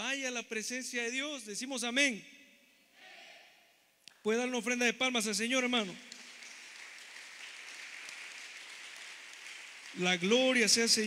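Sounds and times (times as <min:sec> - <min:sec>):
congregation applauding: 0:05.8 - 0:11.0.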